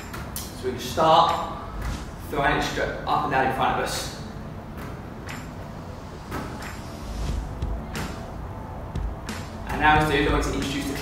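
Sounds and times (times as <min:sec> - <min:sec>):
low rumble: 0:05.8 - 0:11.0.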